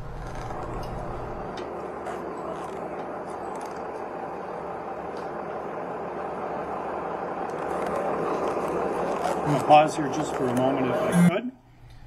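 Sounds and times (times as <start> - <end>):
night street noise: 0.0 - 11.3.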